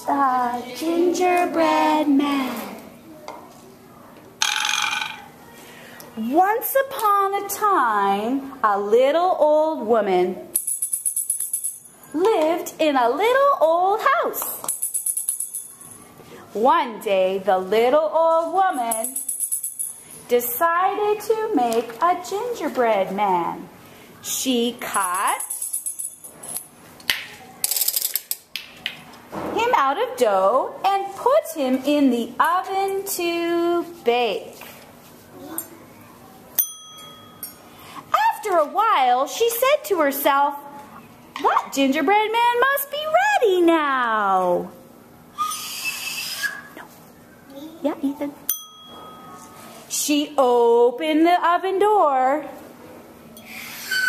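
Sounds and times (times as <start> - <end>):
high ringing tone: 36.6 - 37.6, 48.5 - 49.8
percussion instrument scrape: 53.4 - 54.0.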